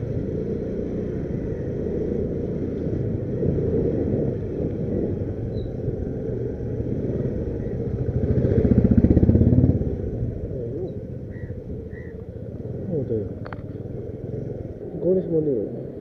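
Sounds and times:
motorcycle engine running: 0.0 - 15.9.

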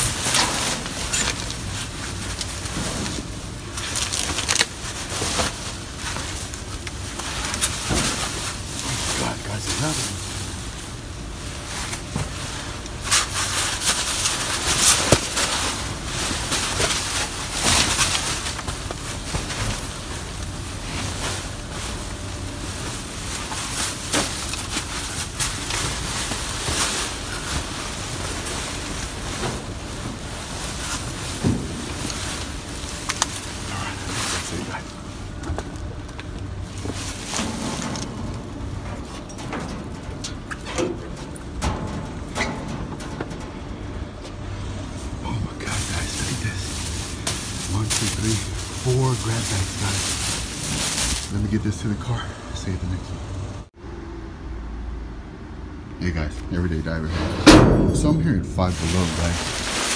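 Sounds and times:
plastic bags rustling and crinkling: 0.0 - 52.8, 58.5 - 59.9
knocks and crackles: 11.5 - 51.3.

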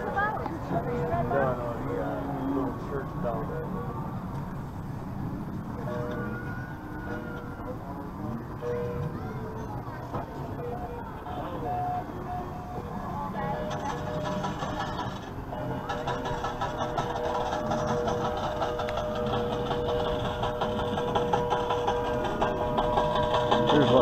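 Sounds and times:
voices: 0.0 - 24.0
steady held tones: 10.4 - 24.0.

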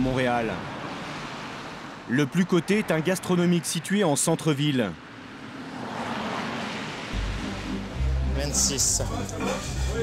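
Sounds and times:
car passing: 0.0 - 3.7, 5.0 - 10.0.

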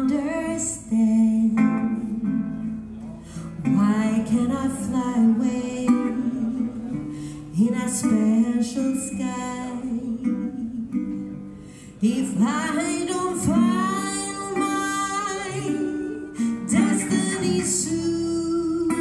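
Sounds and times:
guitar picked and strummed: 0.0 - 19.0.

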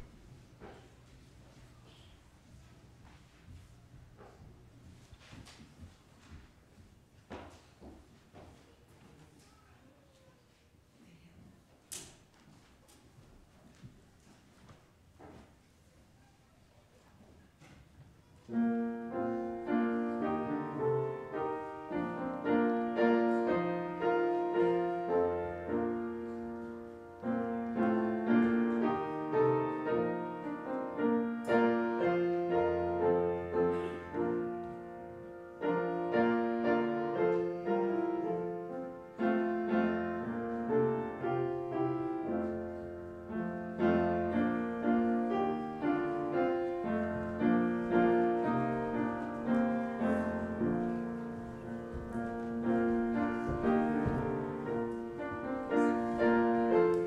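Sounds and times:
upright piano playing chords: 0.0 - 0.2, 18.5 - 57.0.

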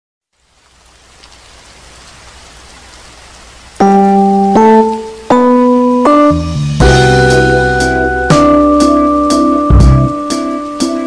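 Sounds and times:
steady rain: 0.2 - 11.0
sustained keyboard chord: 3.8 - 11.0.

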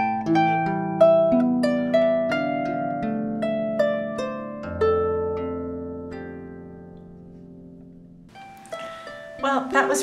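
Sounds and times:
harp notes plucked: 0.0 - 10.0.

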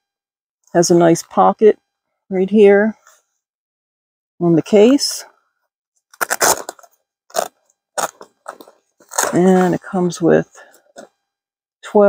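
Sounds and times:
fabric bag rustling and scraping: 6.2 - 9.9.

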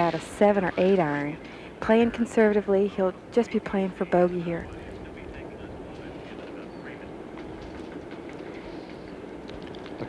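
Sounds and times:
faint scattered voices: 0.0 - 9.2.

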